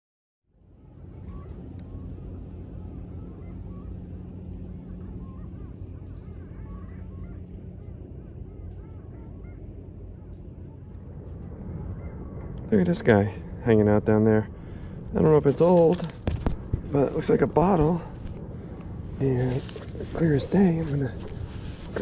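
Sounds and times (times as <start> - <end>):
steady low hum: 0.5 - 22.0
geese honking in the distance: 1.0 - 16.1, 17.0 - 22.0.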